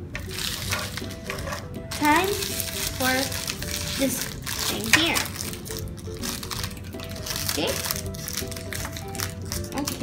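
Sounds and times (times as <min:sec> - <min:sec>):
light background music: 0:00.0 - 0:10.0
foil wrapper crinkling: 0:00.2 - 0:10.0
scissors cutting foil: 0:00.2 - 0:10.0.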